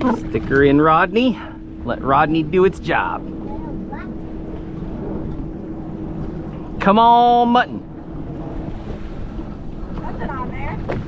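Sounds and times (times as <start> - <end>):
boat motor running: 0.0 - 11.0
faint steady hum: 0.0 - 11.0
water noise: 0.0 - 11.0
wind: 0.0 - 11.0.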